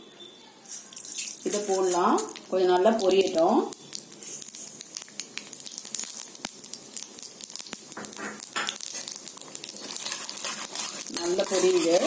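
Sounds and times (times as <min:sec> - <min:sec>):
lentils sizzling in hot oil: 0:00.6 - 0:12.0.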